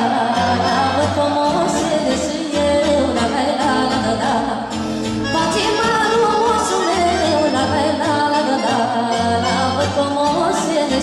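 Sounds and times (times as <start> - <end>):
person singing: 0.0 - 11.0
folk band with accordion: 4.8 - 10.7.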